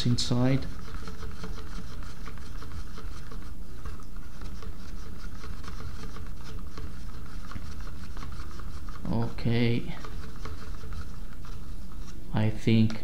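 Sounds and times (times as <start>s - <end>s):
stick scraping inside mixing cup: 0.0s - 12.2s.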